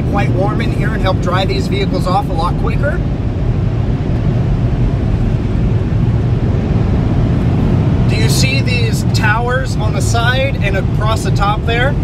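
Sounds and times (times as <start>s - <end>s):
car wash dryer blowers rushing: 0.0s - 12.0s.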